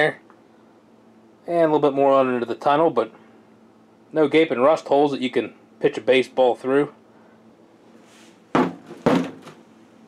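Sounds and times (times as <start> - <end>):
boot stamping on sheet metal: 8.6 - 9.6.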